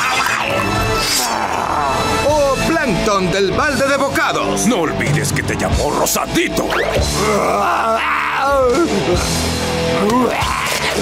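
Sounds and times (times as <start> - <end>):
background music: 0.0 - 11.0
cartoon character angry groan: 1.1 - 2.1, 7.2 - 9.2, 10.0 - 11.0.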